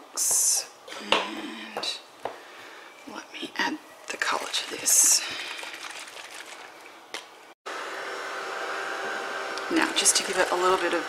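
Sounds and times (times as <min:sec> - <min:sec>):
heat tool blowing with whine: 0:07.7 - 0:11.0.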